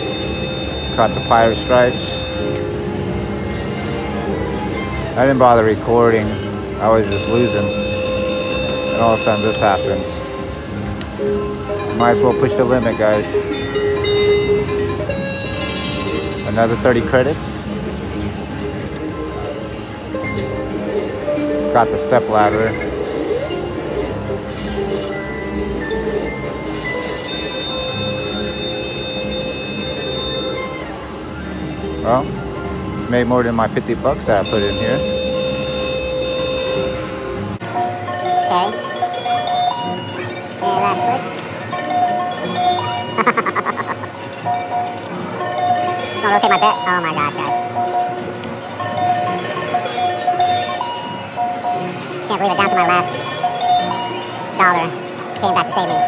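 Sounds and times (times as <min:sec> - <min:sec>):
steady chime: 0:00.0 - 0:02.6
bright ringing tones: 0:00.0 - 0:02.9, 0:07.0 - 0:10.7, 0:13.5 - 0:16.8, 0:34.4 - 0:56.0
slot machine electronic chimes: 0:00.0 - 0:03.4, 0:06.8 - 0:17.6, 0:19.4 - 0:31.1, 0:34.2 - 0:56.0
casino chatter: 0:00.0 - 0:11.2, 0:12.0 - 0:56.0.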